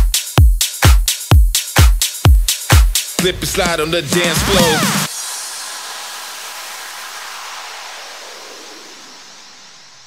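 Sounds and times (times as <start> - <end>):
synthesized white noise: 5.0 - 10.0.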